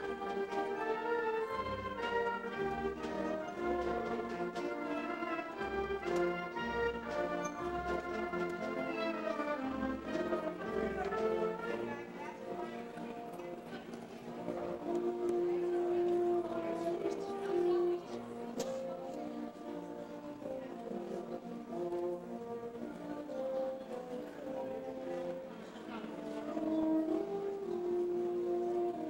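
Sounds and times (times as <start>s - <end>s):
concert wind band playing: 0.0s - 29.0s.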